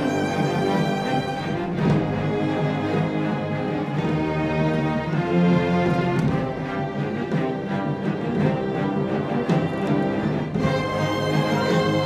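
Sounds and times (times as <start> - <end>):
symphony orchestra playing: 0.0 - 12.0.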